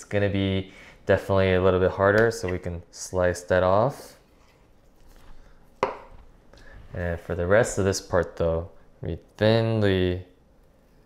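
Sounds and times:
knife tapping cutting board: 5.8s - 6.1s.

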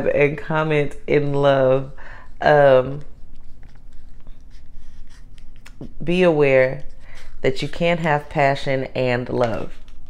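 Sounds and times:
soft rustling: 0.0s - 8.5s
low steady hum: 0.0s - 10.0s.

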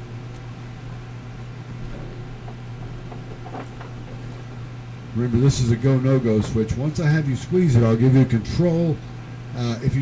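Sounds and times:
centrifuge hum and hiss: 0.0s - 10.0s.

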